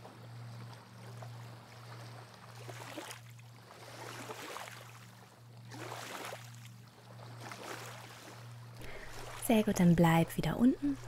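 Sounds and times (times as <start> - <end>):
low steady hum: 0.0 - 11.0
small waves lapping on sand: 0.0 - 11.0.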